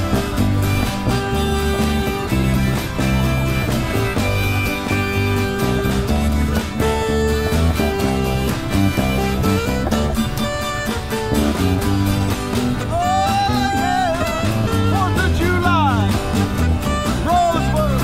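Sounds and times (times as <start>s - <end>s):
steady bass line: 0.0s - 18.0s
strummed acoustic guitar: 0.0s - 18.0s.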